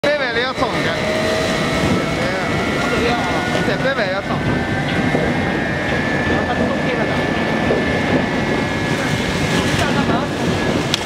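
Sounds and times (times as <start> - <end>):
machine whine: 0.0 - 11.0.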